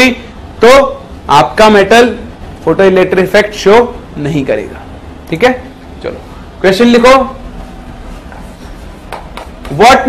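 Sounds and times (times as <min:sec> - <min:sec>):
man speaking: 0:00.0 - 0:07.4, 0:09.7 - 0:10.0
chalk tapping on chalkboard: 0:09.0 - 0:10.0.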